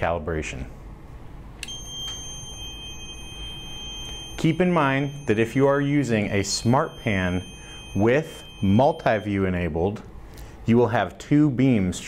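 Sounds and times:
steady high-pitched beep: 0:01.6 - 0:09.8
fainter second tone: 0:01.6 - 0:10.0.

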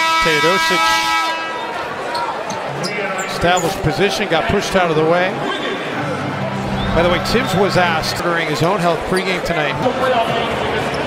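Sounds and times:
crowd murmur: 0:05.5 - 0:09.2.

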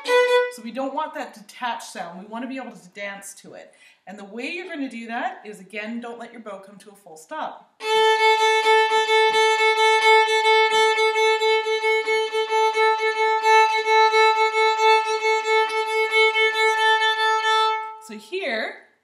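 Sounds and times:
violin bowing a held note: 0:07.8 - 0:18.0.

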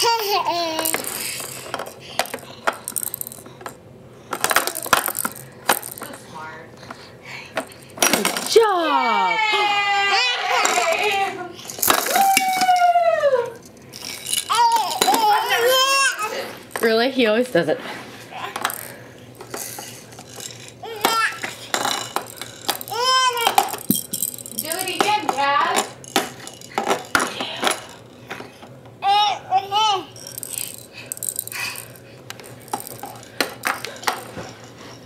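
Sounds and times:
plastic toy parts clattering: 0:00.1 - 0:06.2, 0:07.6 - 0:08.7, 0:11.7 - 0:12.8, 0:13.6 - 0:17.0, 0:18.5 - 0:28.5, 0:30.1 - 0:34.6.

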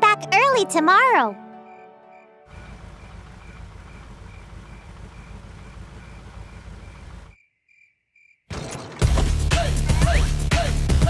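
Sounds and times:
crickets chirping: 0:01.7 - 0:08.4
truck engine rumble: 0:02.5 - 0:07.4.

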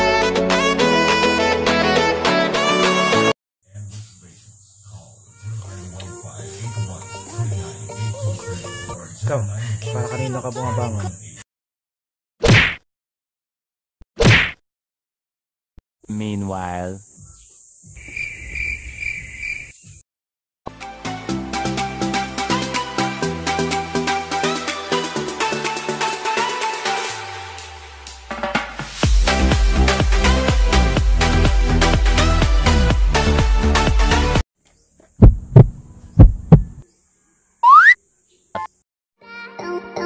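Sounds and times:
music with a beat: 0:28.0 - 0:34.4
heartbeat thumps: 0:35.2 - 0:36.8
high pulsing chirp call: 0:37.6 - 0:38.0
rising whistle glide: 0:37.6 - 0:38.0.

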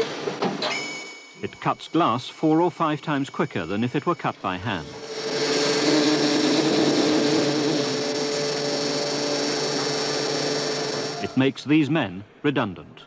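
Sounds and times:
glass-cutting machine whirring: 0:03.9 - 0:11.5.

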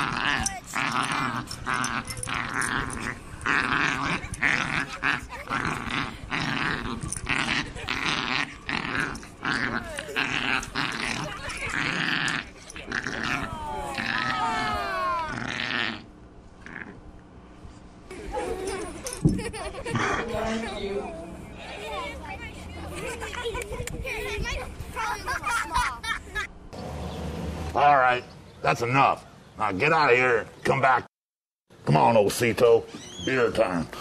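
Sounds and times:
small dog growling: 0:00.0 - 0:17.0, 0:18.6 - 0:21.4.

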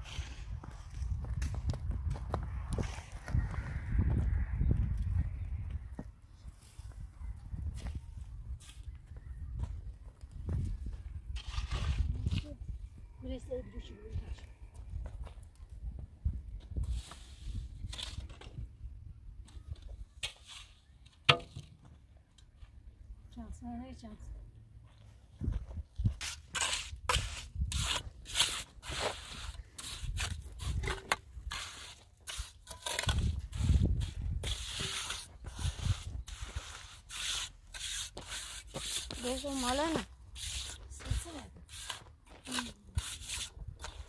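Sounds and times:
wind on microphone: 0:00.0 - 0:13.2, 0:33.0 - 0:36.8
trowel scraping wet mortar: 0:11.3 - 0:12.5, 0:26.1 - 0:44.0.

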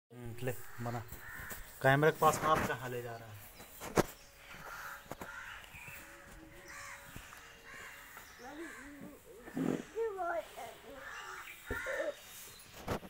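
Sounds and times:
short bird calls: 0:03.7 - 0:13.0.

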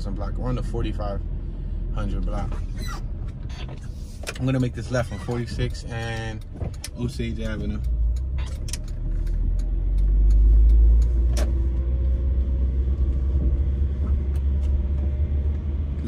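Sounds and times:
car engine and road rumble: 0:00.0 - 0:16.0.

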